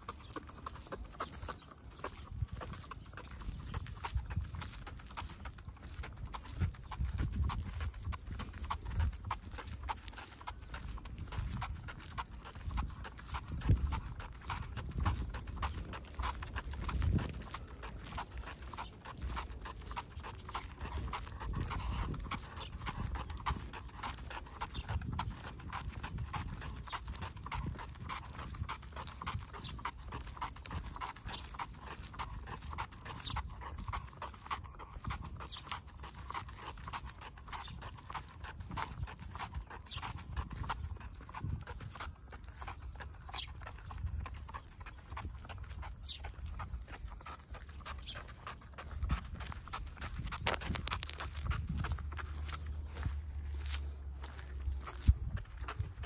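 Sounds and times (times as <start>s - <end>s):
dog paws tapping on asphalt: 0.0s - 56.0s
low thumps of footsteps: 52.2s - 55.6s.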